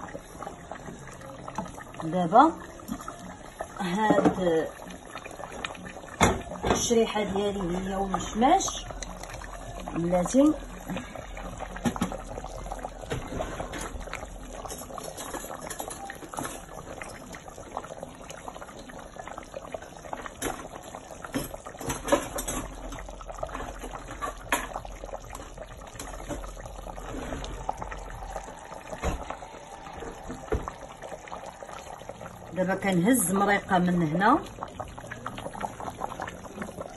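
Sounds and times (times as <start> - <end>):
stew bubbling in a pot: 0.0 - 36.9.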